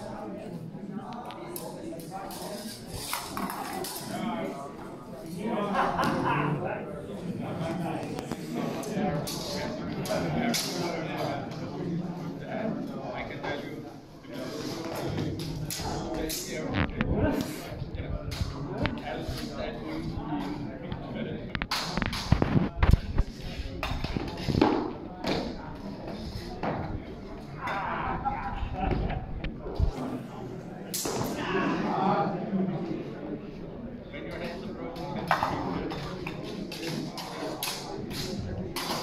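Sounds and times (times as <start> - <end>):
voices echoing in a hall: 0.0 - 39.0.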